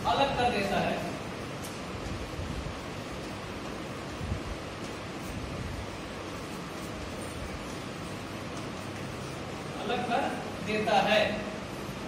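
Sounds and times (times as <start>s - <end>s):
room hiss: 0.0s - 12.0s
chalk scratching on blackboard: 4.8s - 10.5s.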